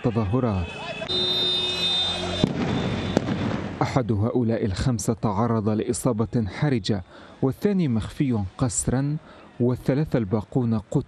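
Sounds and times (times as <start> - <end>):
street commotion: 0.0 - 11.0
high whistle-like tone: 0.7 - 3.2
tear gas canisters firing bangs: 2.4 - 3.8.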